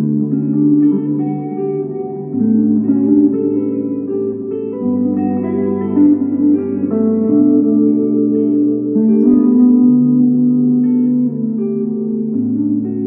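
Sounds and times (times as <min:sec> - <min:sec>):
improvised electric guitar line: 0:00.0 - 0:13.0
layered electric guitar loops: 0:00.0 - 0:13.0.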